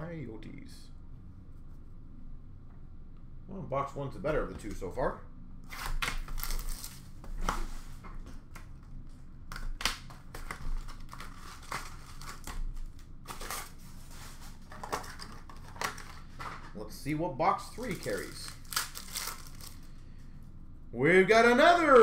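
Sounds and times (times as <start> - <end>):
wrapping crinkling and tearing: 5.7 - 7.7, 9.5 - 16.8, 17.7 - 20.0.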